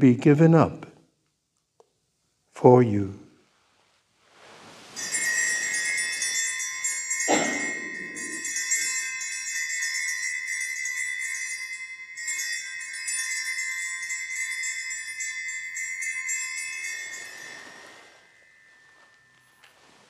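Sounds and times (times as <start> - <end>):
small bells jingling: 4.6 - 20.0.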